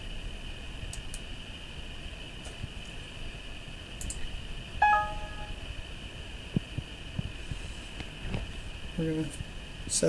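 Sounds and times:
electronic chime: 0:04.8 - 0:05.6
high-pitched hum: 0:04.8 - 0:05.9.

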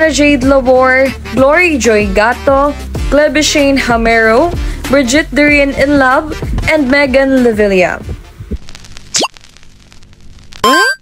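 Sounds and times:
faint background music: 0:00.0 - 0:09.2.

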